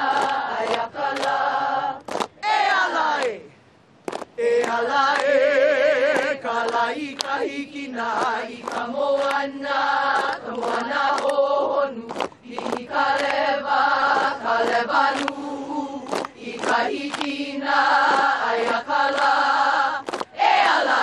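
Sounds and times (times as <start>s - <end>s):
women chanting together: 0.0s - 3.5s, 4.5s - 21.0s.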